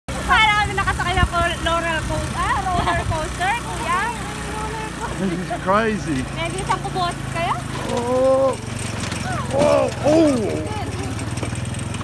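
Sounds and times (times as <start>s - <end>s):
motorcycle engine running: 0.1s - 12.0s.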